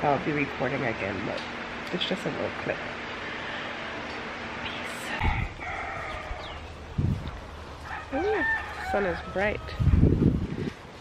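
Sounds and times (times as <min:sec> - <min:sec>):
rooster crowing: 0:05.2 - 0:06.7, 0:07.8 - 0:10.0.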